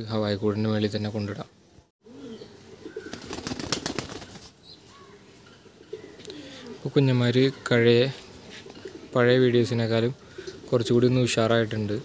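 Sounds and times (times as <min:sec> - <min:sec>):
pigeon cooing: 0:02.0 - 0:04.4, 0:05.7 - 0:06.8
wings flapping: 0:03.0 - 0:04.6.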